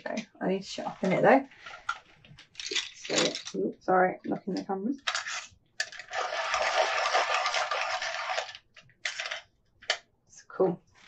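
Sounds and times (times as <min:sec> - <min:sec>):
pencil sharpening scrape: 0:05.1 - 0:09.4.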